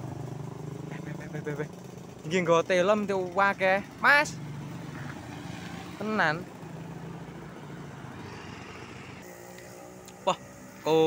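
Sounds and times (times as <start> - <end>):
approaching scooter hum: 0.0 - 11.0
scooter passing close by: 4.3 - 11.0.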